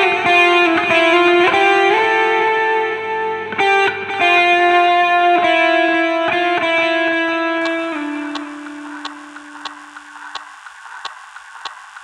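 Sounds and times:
electric guitar note ringing: 0.0 - 10.7
soft regular ticking: 7.6 - 12.0
steady hiss: 7.7 - 12.0.

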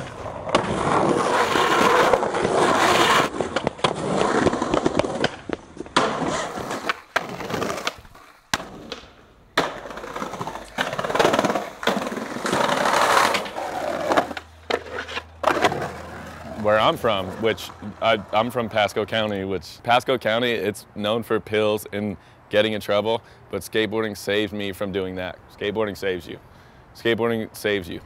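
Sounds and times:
skateboard popping and landing clacks: 0.0 - 18.4
skateboard trucks grinding metal rail: 0.0 - 18.8
skateboard wheels rolling on pavement: 0.0 - 20.7.

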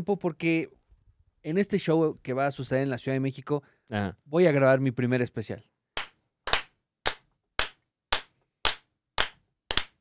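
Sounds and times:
slow hand clapping: 6.0 - 10.0.

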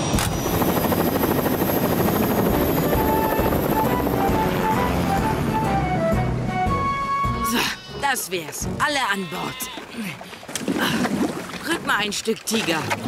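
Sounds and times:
cartoon helicopter rotor: 0.0 - 5.8
background music: 0.2 - 9.8.

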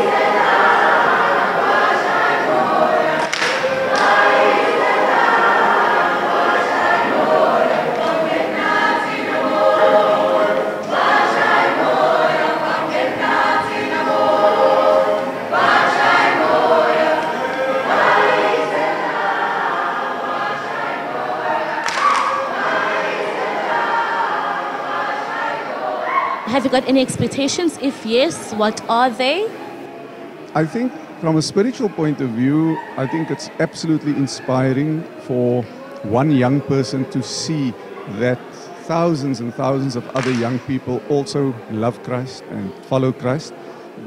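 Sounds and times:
young voices singing a cappella: 0.0 - 29.9.

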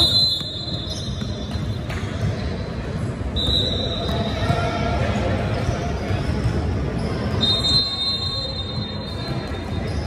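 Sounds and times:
hubbub of basketball gym: 0.0 - 10.0.

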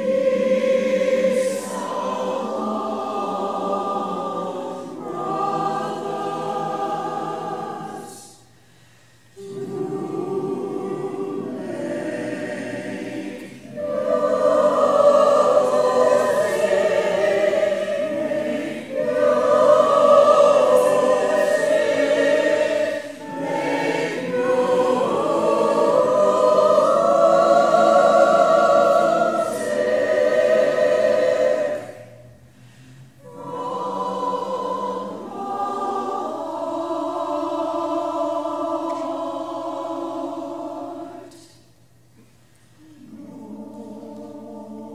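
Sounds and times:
choir singing: 0.0 - 8.6, 9.3 - 41.8, 42.8 - 44.9.

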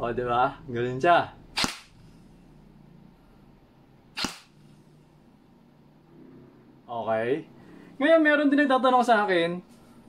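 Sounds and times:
airsoft gun shot crack: 1.6 - 1.9, 4.2 - 4.6.

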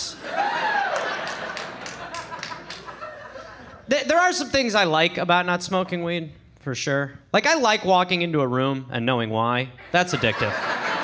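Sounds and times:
audience laughing: 0.1 - 3.9, 9.8 - 11.0
scattered clapping: 0.9 - 3.0.

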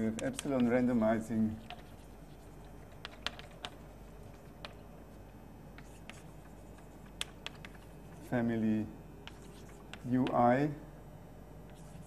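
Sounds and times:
chalk tapping on chalkboard: 0.0 - 0.8, 1.4 - 4.8, 5.8 - 8.3, 9.2 - 10.4
chalk scratching: 0.2 - 4.8, 5.8 - 8.4, 9.2 - 10.4, 11.7 - 12.0.

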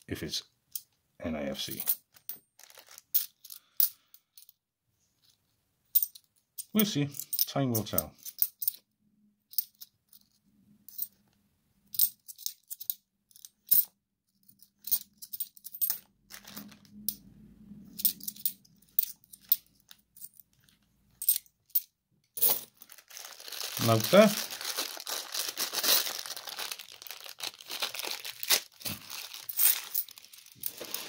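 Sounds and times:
plastic bag crinkling: 2.6 - 3.1, 16.3 - 16.9, 22.4 - 31.0
coins clinking: 6.0 - 8.8, 14.6 - 17.2, 18.0 - 20.5, 21.2 - 27.6, 29.1 - 31.0.

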